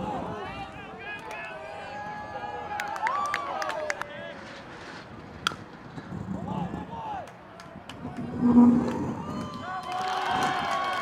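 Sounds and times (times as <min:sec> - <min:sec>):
baseball bat crack: 0:05.4 - 0:05.7.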